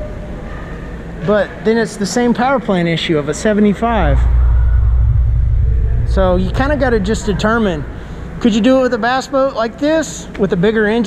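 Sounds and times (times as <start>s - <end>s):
wind buffeting microphone: 3.9s - 8.4s.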